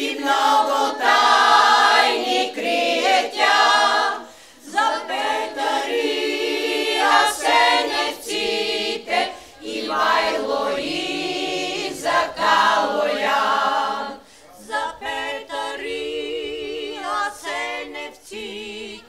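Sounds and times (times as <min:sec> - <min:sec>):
women's choir singing a cappella: 0:00.0 - 0:19.0.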